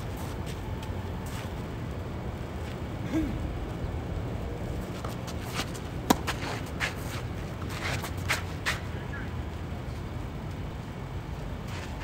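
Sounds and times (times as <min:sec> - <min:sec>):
low background rumble: 0:00.0 - 0:12.0
footsteps scuffing on clay: 0:04.8 - 0:09.0
tennis ball struck by racket: 0:06.0 - 0:06.6.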